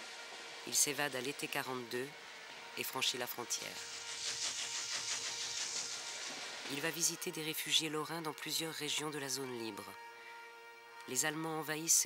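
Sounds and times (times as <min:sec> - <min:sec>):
train carriages rolling on rails: 0:00.0 - 0:07.2.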